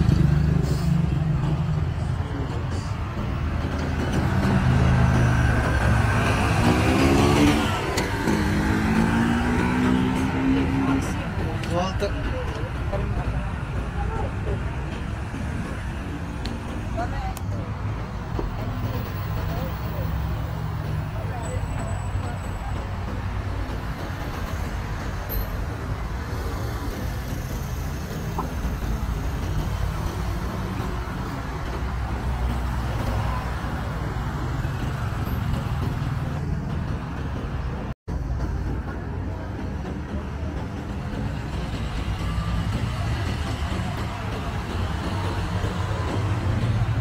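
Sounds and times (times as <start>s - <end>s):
car and motorbike traffic rumble: 0.0s - 47.0s
people's voices: 0.0s - 47.0s.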